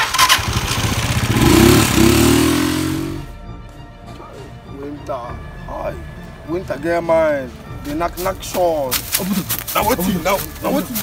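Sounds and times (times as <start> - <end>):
engine revving: 0.0 - 3.3.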